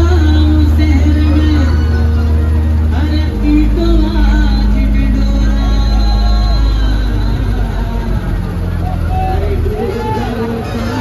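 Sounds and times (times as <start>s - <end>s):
heavy bass music: 0.0s - 11.0s.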